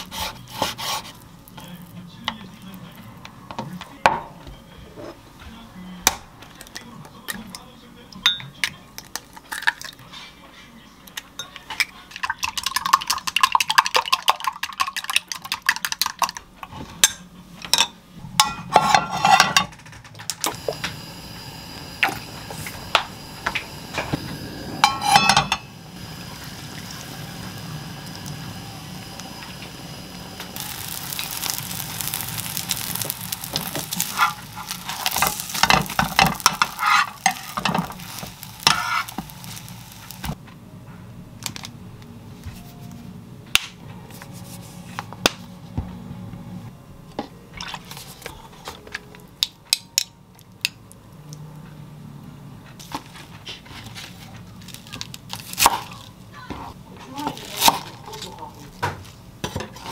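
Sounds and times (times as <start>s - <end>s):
chopsticks whisking eggs in glass: 12.2s - 16.4s
egg sizzling in frying pan: 12.3s - 16.4s, 20.5s - 40.4s
pan clattering: 24.8s - 25.7s
chopsticks tapping and stirring: 30.5s - 39.6s.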